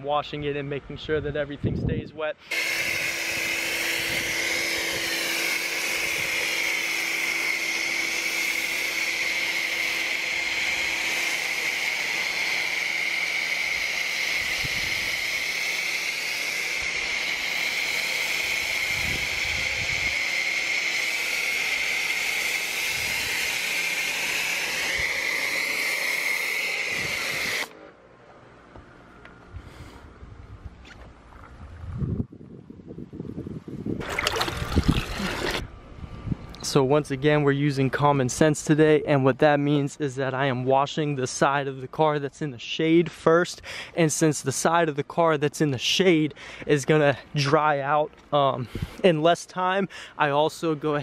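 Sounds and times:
pressure washer spraying foam: 2.4 - 27.8.

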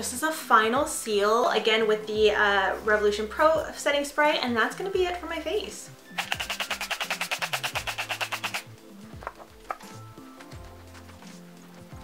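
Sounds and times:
soft background music: 0.0 - 12.0
spray bottle pulsing hiss: 6.1 - 8.8.

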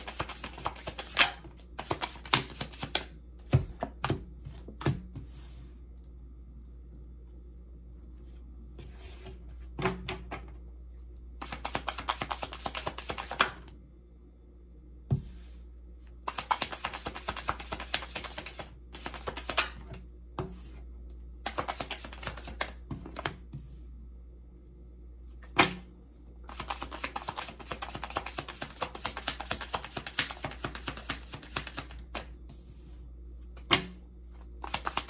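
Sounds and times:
cards being shuffled: 0.0 - 3.1, 11.4 - 13.6, 16.2 - 19.8, 21.4 - 23.4, 26.5 - 32.4, 34.4 - 35.0.

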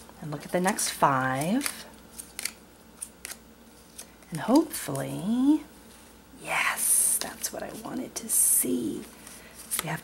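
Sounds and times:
playing cards snapping: 1.4 - 3.4.

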